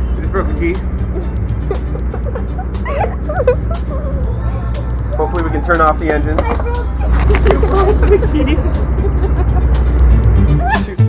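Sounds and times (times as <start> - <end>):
boat engines idling: 0.0 - 10.9
people laughing: 1.1 - 4.4, 6.4 - 11.0.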